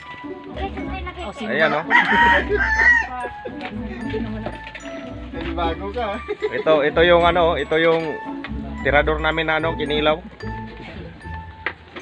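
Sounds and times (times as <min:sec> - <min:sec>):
rooster crowing: 0:01.6 - 0:03.2.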